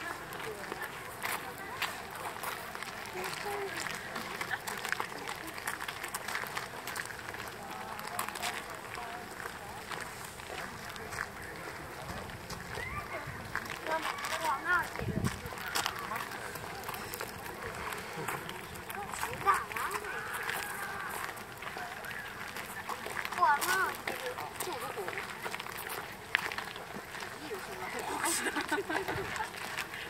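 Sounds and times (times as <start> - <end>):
footsteps on gravel: 0.0 - 30.0
people talking nearby: 0.0 - 30.0.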